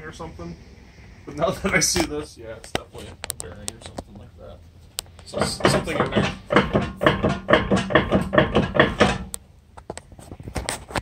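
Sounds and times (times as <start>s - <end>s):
car wheel clunking: 5.3s - 9.4s.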